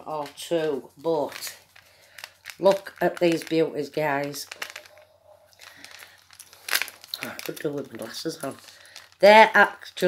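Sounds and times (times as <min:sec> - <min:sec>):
faint handling noise: 0:00.0 - 0:09.3.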